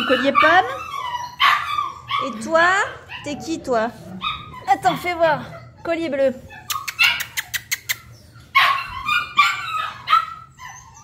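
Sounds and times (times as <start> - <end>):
puppies yipping: 0.0 - 11.0.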